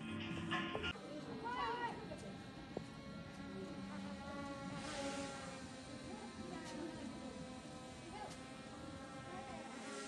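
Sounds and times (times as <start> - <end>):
drone propellers buzzing: 0.1 - 10.0.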